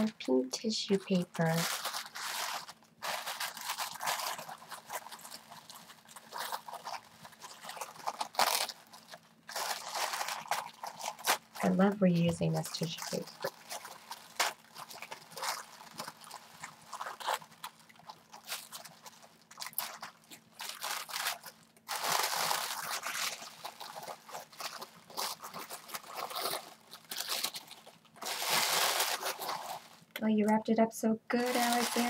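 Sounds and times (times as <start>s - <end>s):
tissue paper crinkling: 0.0s - 30.2s, 31.3s - 32.0s.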